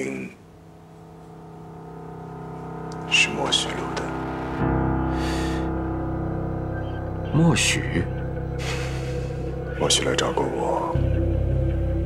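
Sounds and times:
soft held chord score: 0:00.0 - 0:12.0.

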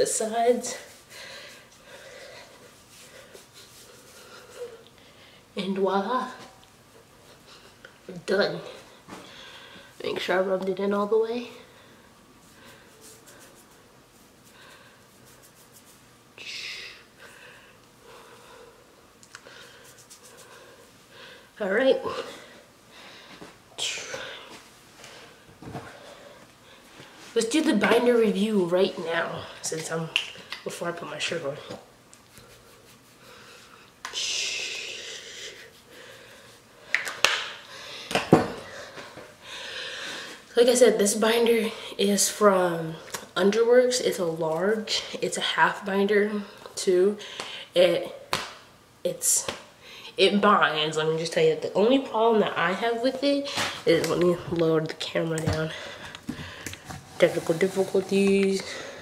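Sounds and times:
fingers scratching hair and scalp: 0:13.0 - 0:16.1, 0:19.7 - 0:20.6.

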